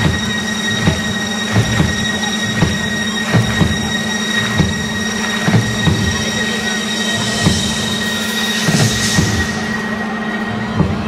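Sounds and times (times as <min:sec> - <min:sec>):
crowd noise: 0:00.0 - 0:11.0
high synth drone: 0:00.0 - 0:11.0.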